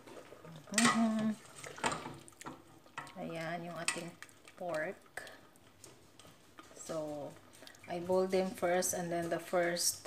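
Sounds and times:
ladle clanking on pot: 0.7s - 3.2s.

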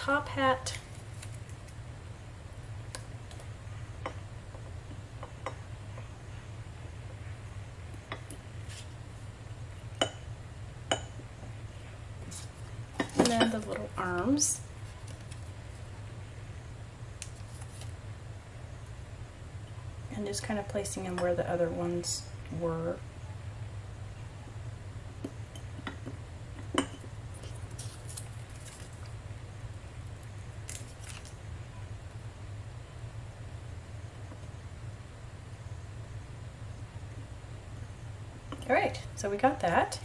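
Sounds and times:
low steady hum: 0.0s - 40.0s.

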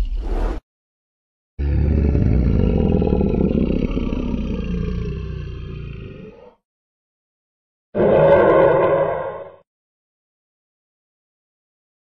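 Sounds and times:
long deep dinosaur roar: 1.6s - 6.6s, 8.0s - 9.6s.

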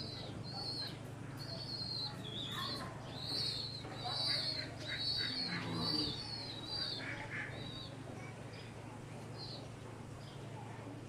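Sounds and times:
young pigeons peeping: 0.0s - 8.0s, 9.3s - 10.4s.

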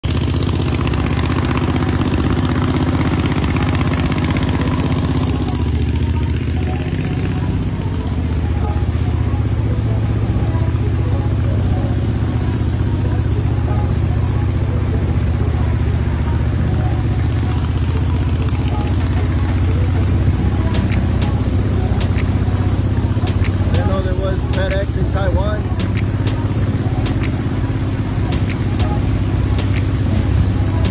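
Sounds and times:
boat motor running steadily: 0.0s - 30.9s.

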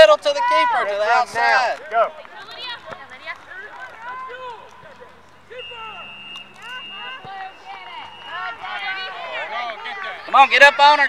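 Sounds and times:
distant shouting voices: 0.0s - 11.0s
faint steady high tone: 5.5s - 10.1s.

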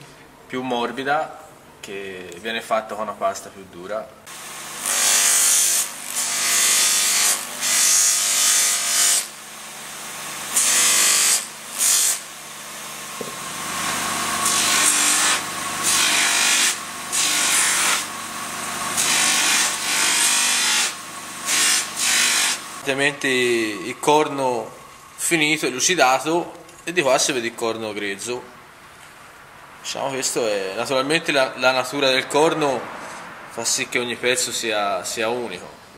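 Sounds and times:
polishing motor humming: 12.8s - 22.9s.

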